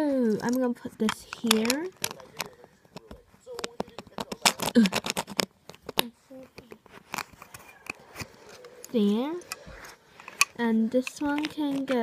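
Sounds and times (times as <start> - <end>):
plastic bricks clicking: 0.3 - 12.0.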